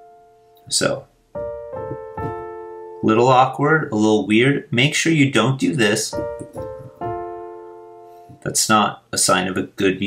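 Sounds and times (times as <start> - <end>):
piano chords struck: 0.0 - 3.8, 6.1 - 8.6.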